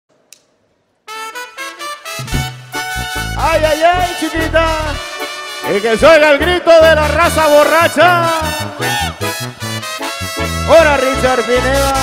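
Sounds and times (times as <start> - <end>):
faint click: 0.1 - 0.5
brass band playing: 1.0 - 12.0.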